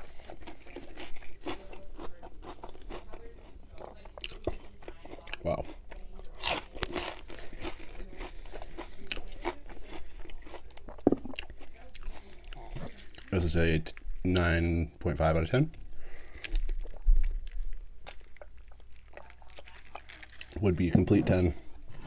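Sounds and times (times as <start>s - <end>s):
crunching and chewing onion ring: 0.0s - 14.2s, 15.7s - 21.0s.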